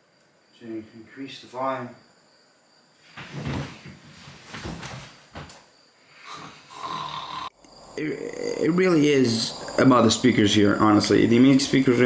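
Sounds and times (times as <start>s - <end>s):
soft rushing ambient soundscape: 7.6s - 12.0s.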